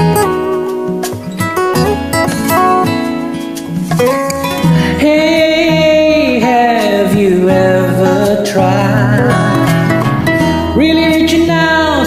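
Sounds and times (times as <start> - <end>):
acoustic guitar: 0.0 - 12.0
man singing a ballad: 4.8 - 10.1, 10.8 - 12.0.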